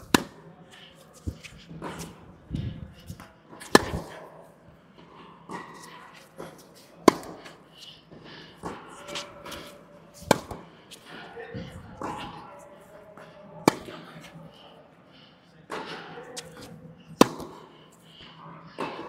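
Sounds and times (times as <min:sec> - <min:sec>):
tennis ball bouncing: 0:00.0 - 0:00.4, 0:03.1 - 0:04.2, 0:05.5 - 0:07.4, 0:10.2 - 0:11.1, 0:13.6 - 0:13.9, 0:15.7 - 0:17.6
tennis racquet striking ball: 0:00.0 - 0:00.4, 0:03.6 - 0:04.2, 0:05.5 - 0:07.5, 0:08.6 - 0:11.2, 0:13.6 - 0:14.0, 0:15.7 - 0:17.6
faint distant tennis hits: 0:05.5 - 0:07.5, 0:08.6 - 0:11.3.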